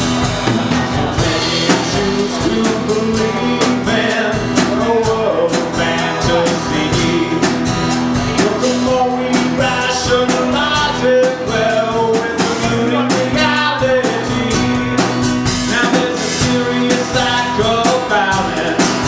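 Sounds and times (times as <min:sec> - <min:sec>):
drum kit and cymbals: 0:00.0 - 0:19.0
strummed acoustic guitar: 0:00.0 - 0:19.0
man singing: 0:00.1 - 0:19.0.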